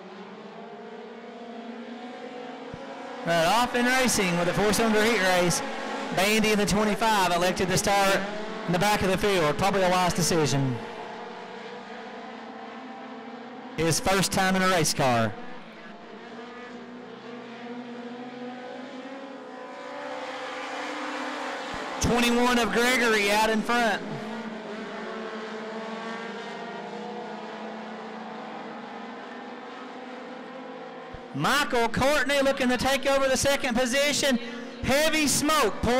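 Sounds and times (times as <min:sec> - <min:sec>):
stock car engines racing: 0:00.0 - 0:35.9.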